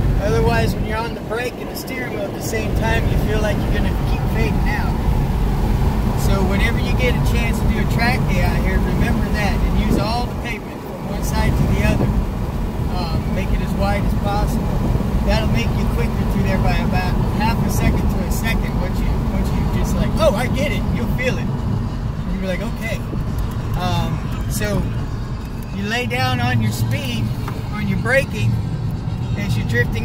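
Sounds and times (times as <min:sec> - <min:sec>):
car engine and road noise: 0:00.0 - 0:30.0.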